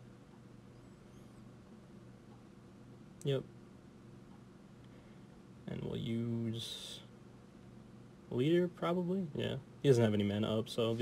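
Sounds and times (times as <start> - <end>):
steady low hum: 0.0 - 11.0
faint high chirps: 0.6 - 1.6.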